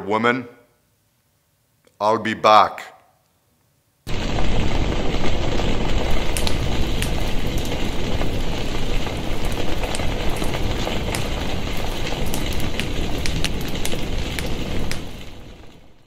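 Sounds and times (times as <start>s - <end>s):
fire crackles: 4.0s - 16.0s
flames rushing: 4.1s - 16.0s.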